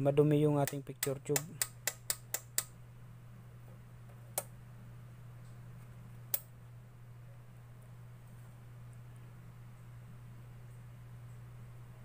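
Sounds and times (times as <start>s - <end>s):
low electrical hum: 0.0s - 12.0s
switch clicking: 0.6s - 2.7s, 4.3s - 4.5s.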